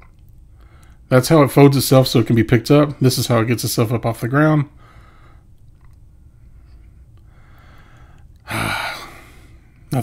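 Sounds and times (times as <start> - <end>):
man gasping: 7.3 - 9.7.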